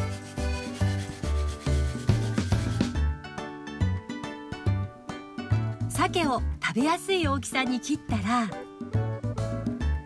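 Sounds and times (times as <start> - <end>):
radish grated on metal grater: 0.0 - 2.9
children's music with steady beat: 0.0 - 6.3.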